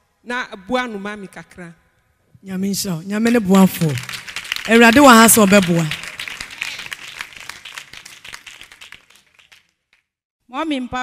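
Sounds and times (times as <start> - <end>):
applause: 3.2 - 10.2.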